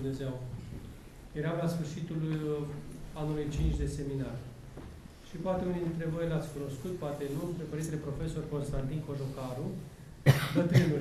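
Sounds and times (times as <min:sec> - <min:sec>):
man speaking: 0:01.4 - 0:04.5
man coughing: 0:10.2 - 0:11.0.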